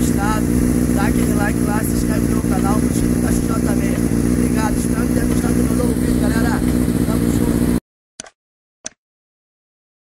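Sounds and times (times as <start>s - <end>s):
man talking: 0.0s - 7.8s
motorcycle engine idling: 0.0s - 7.8s
short clicks: 8.2s - 9.0s.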